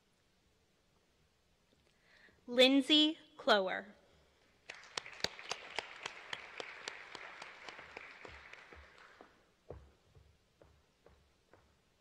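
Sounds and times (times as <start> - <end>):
audience applauding: 4.6 - 9.6
single person clapping evenly: 4.6 - 9.9.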